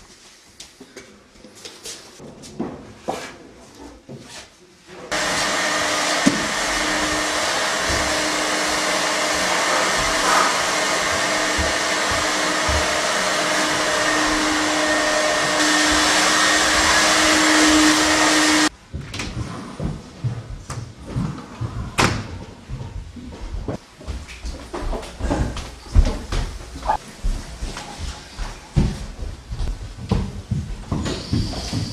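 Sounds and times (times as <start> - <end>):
electric blower motor whooshing: 5.1 - 18.7.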